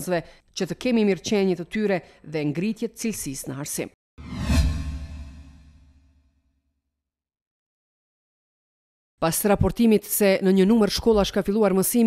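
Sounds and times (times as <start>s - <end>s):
whoosh with deep low hit: 4.2s - 6.1s.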